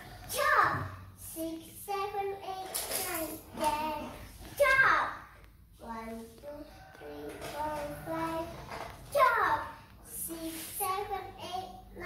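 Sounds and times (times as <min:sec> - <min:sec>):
girl singing unaccompanied: 0:00.0 - 0:12.0.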